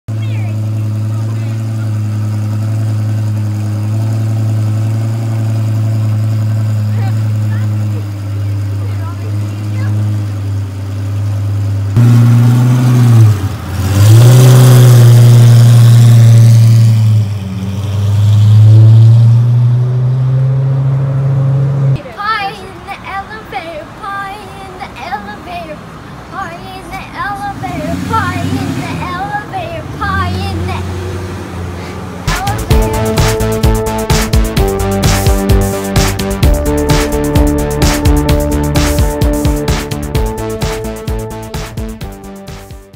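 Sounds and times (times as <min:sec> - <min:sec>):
sports car engine revving: 0:00.1 - 0:22.0, 0:27.4 - 0:42.9.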